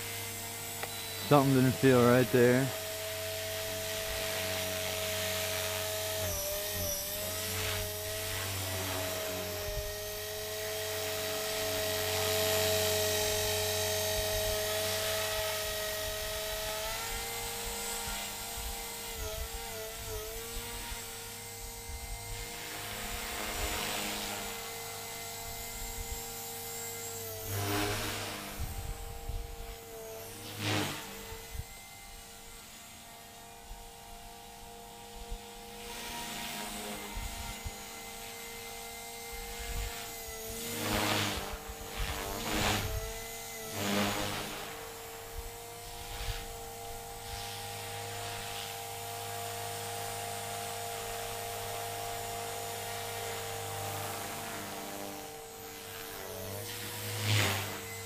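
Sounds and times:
rc helicopter motor whining: 0.0s - 58.0s.

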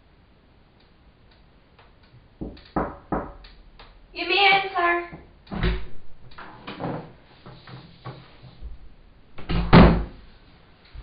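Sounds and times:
door closing with a thud: 5.5s - 7.0s, 9.4s - 10.2s.

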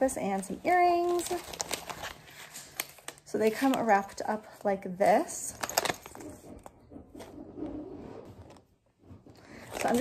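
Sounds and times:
plastic pouches rustling: 0.0s - 6.7s, 9.4s - 10.0s.

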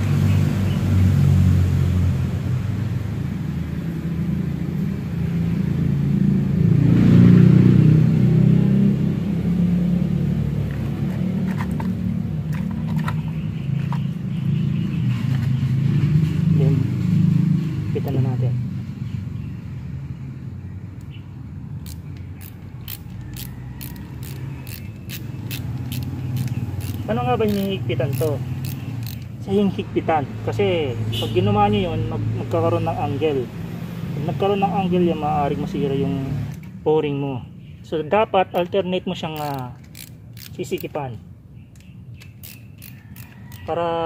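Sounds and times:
ratchet wrench clicking: 21.8s - 29.4s, 38.5s - 41.0s, 41.7s - 43.8s.

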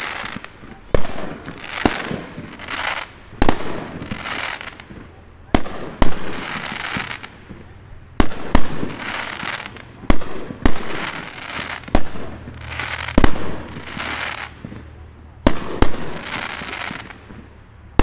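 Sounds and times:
rushing hiss of fireworks: 0.0s - 17.7s
fireworks bangs: 0.0s - 18.0s.

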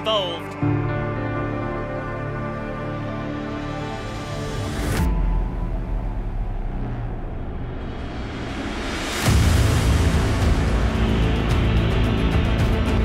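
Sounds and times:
cinematic soundtrack music: 0.0s - 13.0s
heavy bass and ticking beat: 9.3s - 13.0s.

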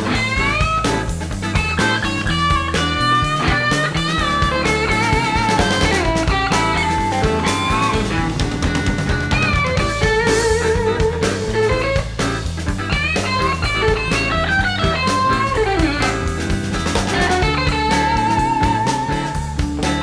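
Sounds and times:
bass guitar: 0.0s - 20.0s
drum kit: 0.0s - 20.0s
electric guitar solo: 0.0s - 20.0s.

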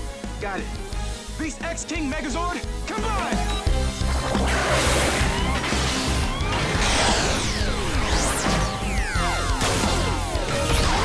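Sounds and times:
dramatic music: 0.0s - 11.0s
whooshing sweeps: 3.9s - 9.1s
crashing mechanical effects: 4.0s - 11.0s.

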